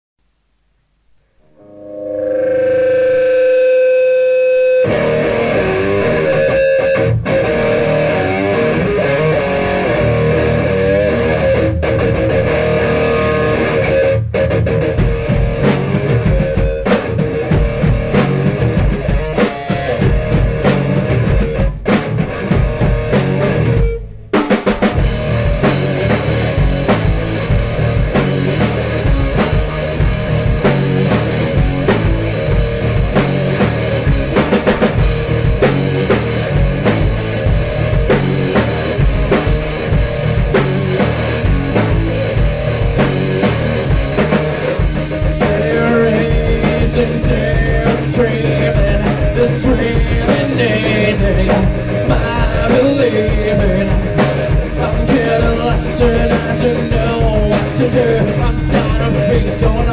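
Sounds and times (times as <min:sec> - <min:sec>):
sustained chord: 0:01.4 - 0:06.5
electric guitars: 0:01.4 - 0:59.9
drum kit: 0:03.2 - 0:59.9.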